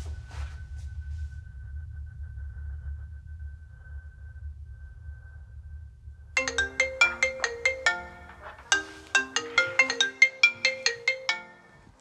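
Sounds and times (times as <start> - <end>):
phone ringtone melody: 6.4 - 12.0.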